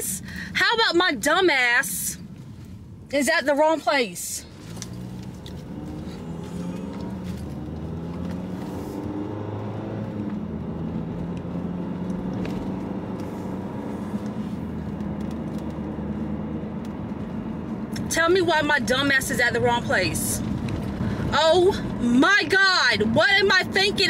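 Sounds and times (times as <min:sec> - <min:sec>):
car engine and road noise: 0:00.0 - 0:24.0.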